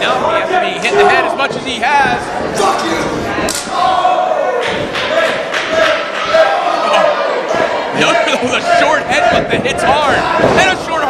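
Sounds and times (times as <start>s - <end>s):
crowd shouting and chanting: 0.0s - 11.0s.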